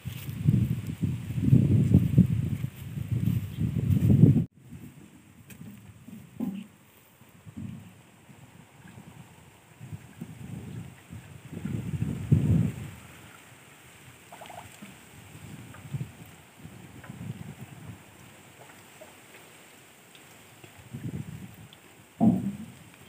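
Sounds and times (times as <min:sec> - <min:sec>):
low gurgling: 0:04.7 - 0:19.3.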